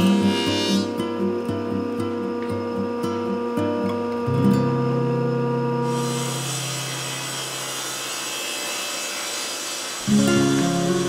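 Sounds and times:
table saw cutting wood: 0.0 - 1.0, 5.8 - 11.0
acoustic guitar music: 0.0 - 6.8, 10.1 - 11.0.

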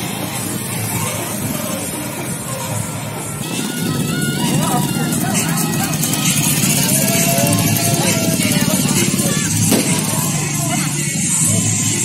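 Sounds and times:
motorbike engines passing: 0.0 - 12.0
music playing: 0.0 - 12.0
voices: 0.0 - 12.0.

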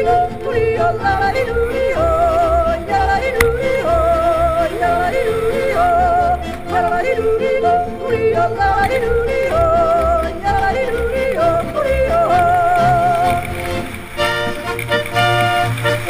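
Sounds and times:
person yodeling: 0.0 - 13.6.

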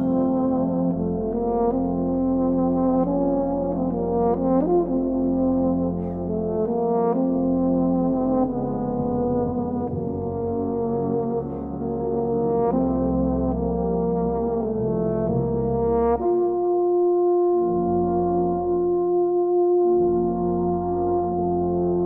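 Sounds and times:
brass band playing chords: 0.0 - 22.0.

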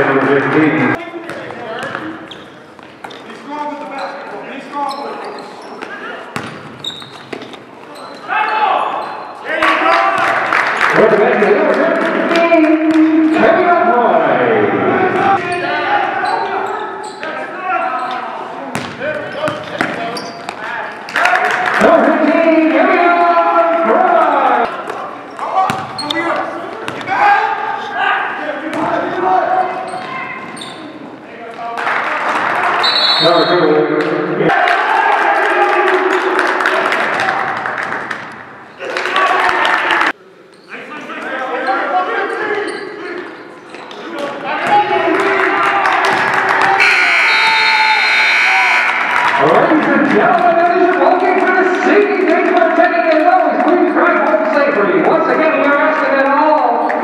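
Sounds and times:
players and spectators voices: 0.0 - 57.0.

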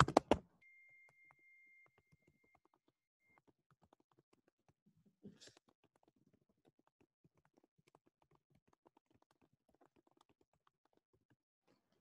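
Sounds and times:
faint rapid small clicks: 1.0 - 11.8.

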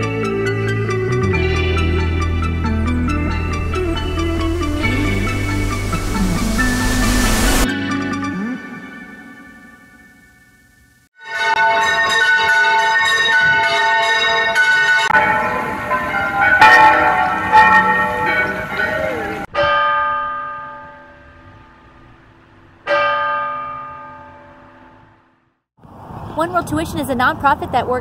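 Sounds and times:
church bells ringing: 0.8 - 7.5, 11.2 - 25.4.

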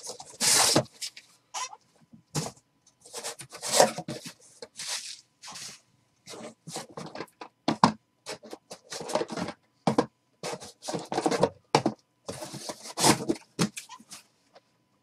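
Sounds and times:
cardboard scrapes and rustles: 0.0 - 1.1, 2.4 - 7.0, 12.3 - 14.2.

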